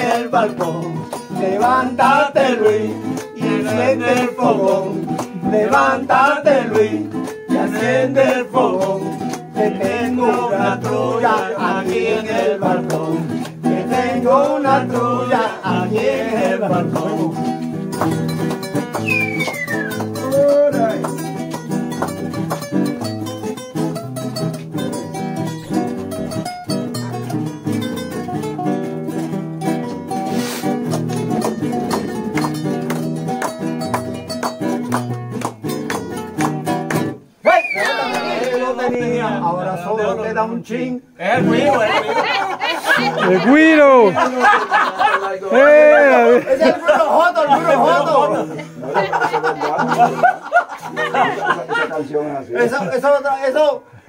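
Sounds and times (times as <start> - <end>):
classical guitars strumming chords: 0.0 - 53.8
person speaking: 41.4 - 44.4.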